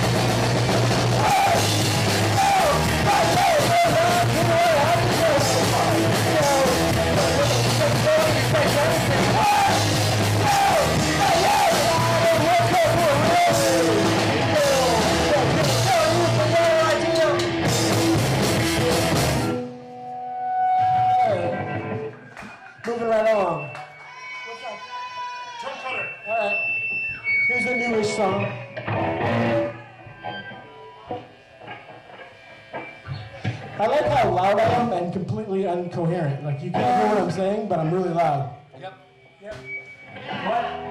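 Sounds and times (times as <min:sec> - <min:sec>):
punk rock band playing live: 0:00.0 - 0:22.3, 0:26.5 - 0:38.5
scattered voices: 0:01.1 - 0:17.6.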